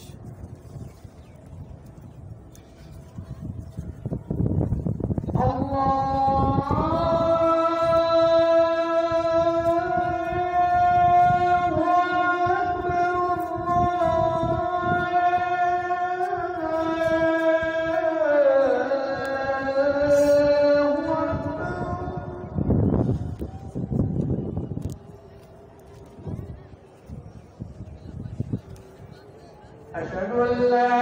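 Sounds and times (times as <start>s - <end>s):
person chanting call to prayer: 5.2s - 24.0s, 29.9s - 31.0s.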